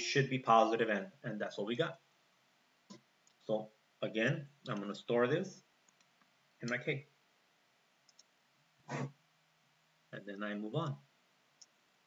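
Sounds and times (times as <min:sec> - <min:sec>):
person speaking: 0:00.0 - 0:02.0, 0:03.4 - 0:05.7.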